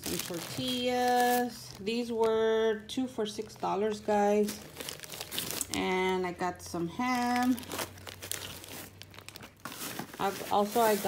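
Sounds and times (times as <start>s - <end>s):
plastic packaging crinkling: 0.0s - 2.6s, 3.4s - 6.2s, 7.0s - 11.0s.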